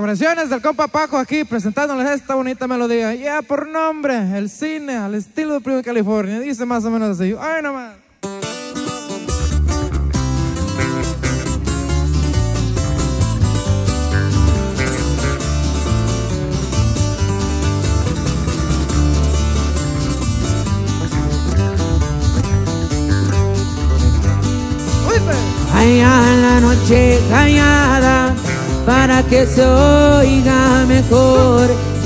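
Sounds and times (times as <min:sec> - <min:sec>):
acoustic guitars picking and strumming: 0:08.2 - 0:32.0
electric bass guitar: 0:08.3 - 0:32.0.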